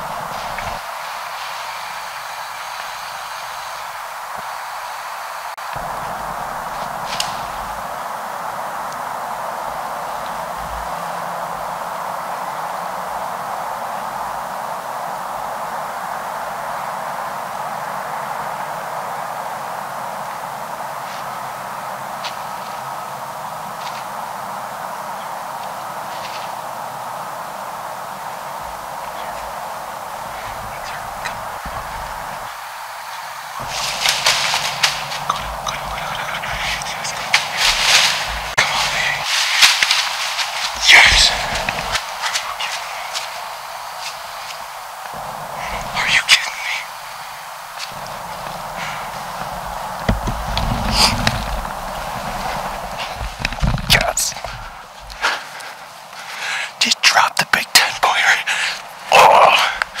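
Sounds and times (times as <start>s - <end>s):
leaves crunching under footsteps: 28.6s - 56.3s
man breathing heavily: 45.2s - 52.0s, 54.4s - 56.8s, 58.4s - 60.0s.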